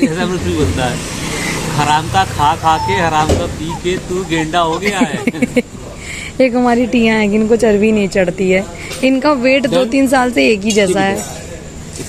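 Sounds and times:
voices talking: 0:00.0 - 0:11.8
car passing by: 0:00.3 - 0:05.0.

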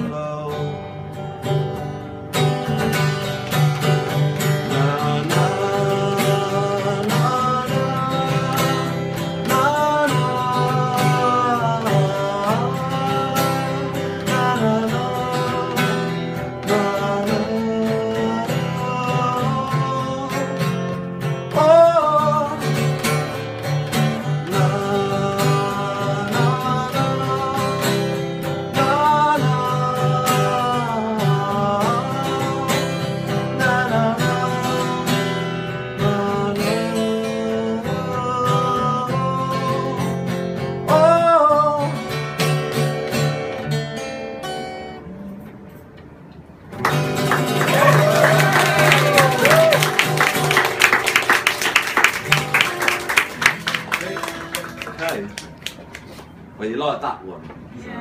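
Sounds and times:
man singing: 0:00.0 - 0:01.2, 0:04.1 - 0:23.2, 0:24.2 - 0:42.4
acoustic guitar strumming: 0:00.0 - 0:56.6.

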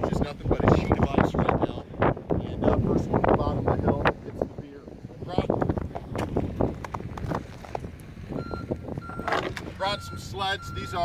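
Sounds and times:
high-pitched electronic beep: 0:08.4 - 0:11.0.

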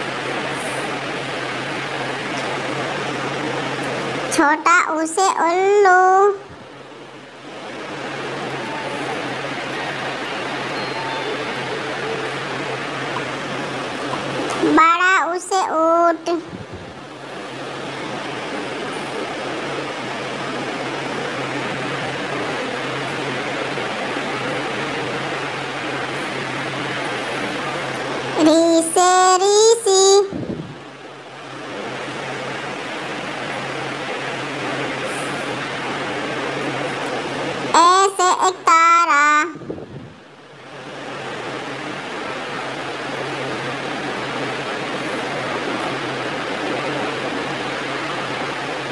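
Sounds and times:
steady rushing noise: 0:00.0 - 0:29.3, 0:30.2 - 0:38.7.

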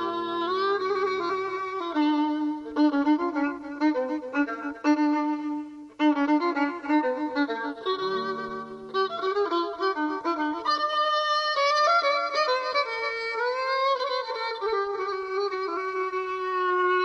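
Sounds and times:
violin melody: 0:00.0 - 0:17.0.

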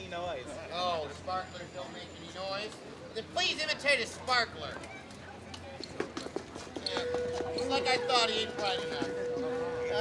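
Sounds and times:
street crowd: 0:00.0 - 0:10.0.

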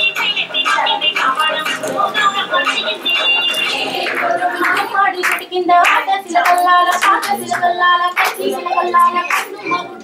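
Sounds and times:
voices: 0:00.0 - 0:10.0.

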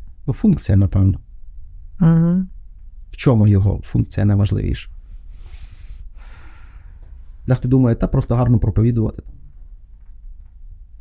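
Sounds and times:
woman breathing through nose: 0:05.3 - 0:07.2.

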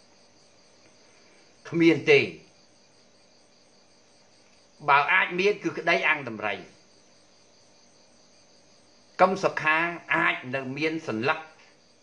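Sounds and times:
crickets trilling: 0:00.0 - 0:12.0
man speaking: 0:01.7 - 0:02.5, 0:04.8 - 0:06.8, 0:09.2 - 0:11.6.

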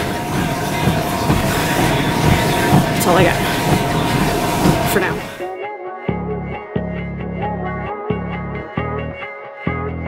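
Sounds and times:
person's voice: 0:03.0 - 0:03.4, 0:04.9 - 0:05.3
background music with plucked notes: 0:05.4 - 0:10.0.

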